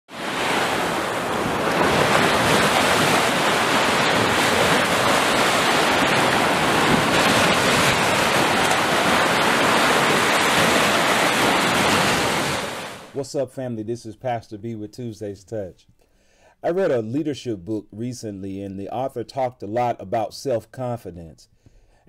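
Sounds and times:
waves breaking on a beach: 0:00.1 - 0:13.2.

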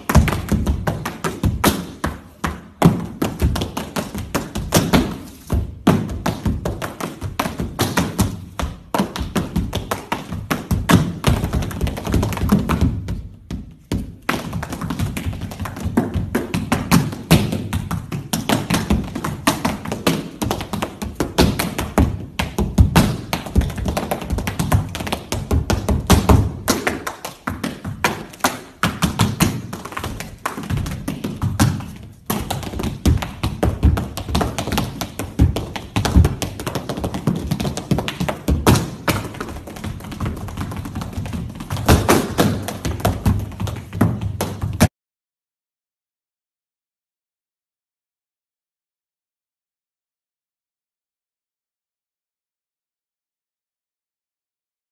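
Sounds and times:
tap shoes on wooden floor: 0:00.0 - 0:44.9.

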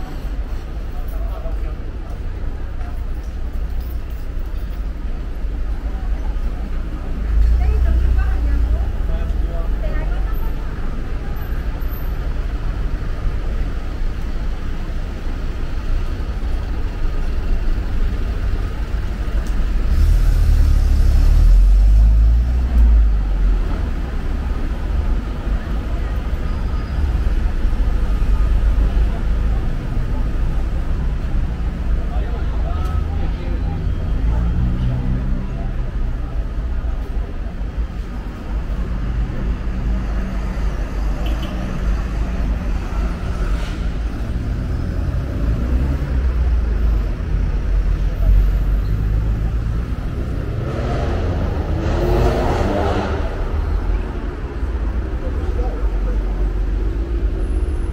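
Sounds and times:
rumble of passing vehicles: 0:00.0 - 0:57.9
voices of passers-by: 0:00.0 - 0:57.9.

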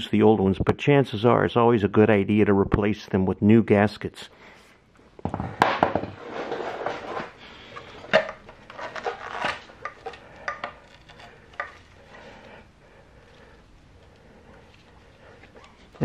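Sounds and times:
metal cover clattering and knocking: 0:05.2 - 0:06.2
cover scraping against metal: 0:05.6 - 0:07.4.

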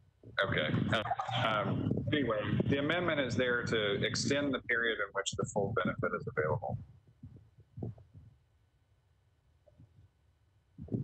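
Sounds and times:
soft low thumps: 0:00.2 - 0:08.4, 0:10.8 - 0:11.0.

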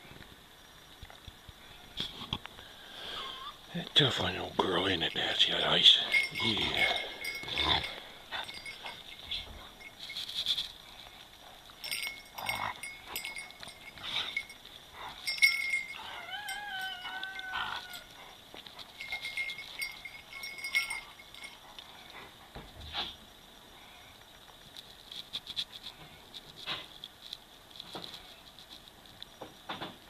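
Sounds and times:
scuffling and claws clicking: 0:04.2 - 0:23.2, 0:24.1 - 0:29.6
dogs whining and yelping: 0:06.2 - 0:22.5.

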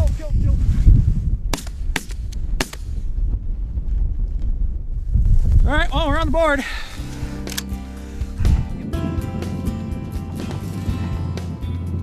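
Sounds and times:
background music with held notes: 0:07.0 - 0:12.0.

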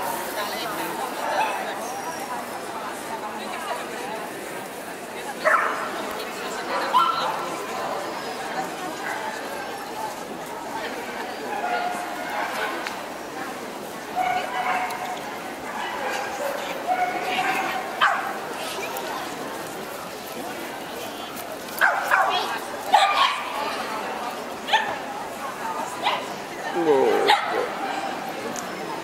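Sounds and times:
crowd murmur in echoing hall: 0:00.0 - 0:29.0.

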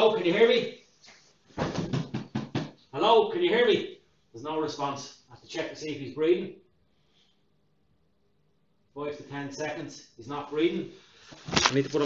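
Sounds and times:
dull knocks and thuds: 0:01.6 - 0:02.8.

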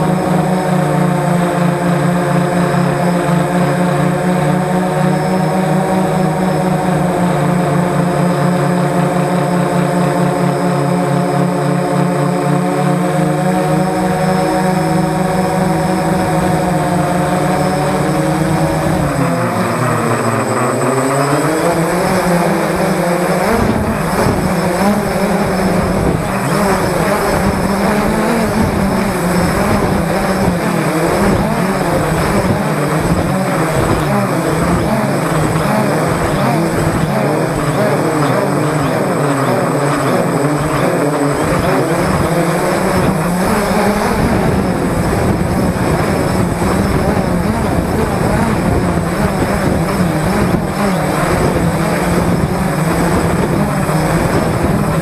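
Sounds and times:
drone motors whining: 0:00.0 - 0:55.0.

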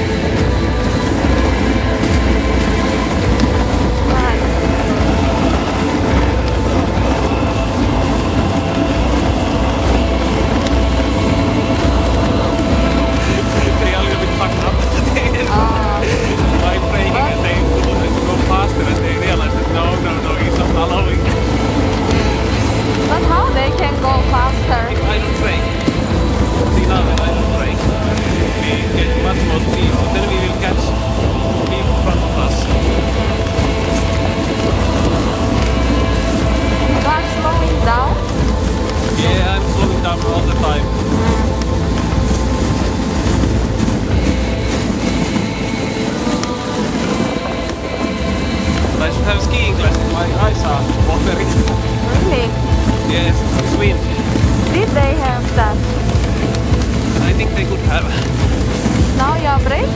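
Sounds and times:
sled runners rumbling on snow: 0:00.0 - 0:59.9
wind buffeting microphone: 0:00.0 - 0:59.9.

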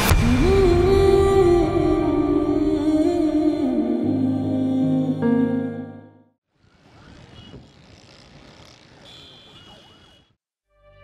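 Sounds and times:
far-off siren: 0:06.6 - 0:11.0.

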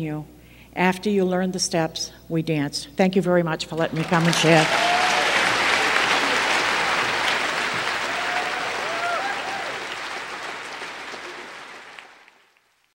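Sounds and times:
audience applauding: 0:03.8 - 0:12.9.

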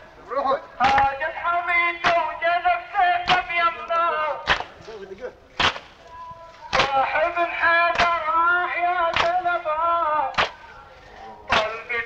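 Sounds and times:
men chanting a lament: 0:00.0 - 0:12.0
crowd beating their chests: 0:00.8 - 0:04.8, 0:05.6 - 0:06.1, 0:06.7 - 0:12.0.

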